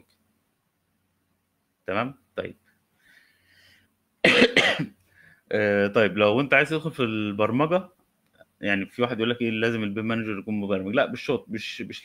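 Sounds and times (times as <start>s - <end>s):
man speaking: 1.9s - 2.6s, 5.5s - 8.0s, 8.6s - 12.0s
loud cough: 4.2s - 4.9s.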